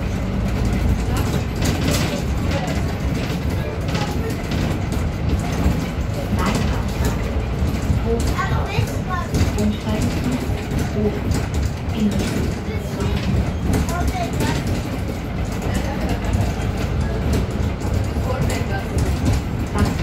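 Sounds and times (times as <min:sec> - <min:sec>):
bus engine and road rumble: 0:00.0 - 0:20.0.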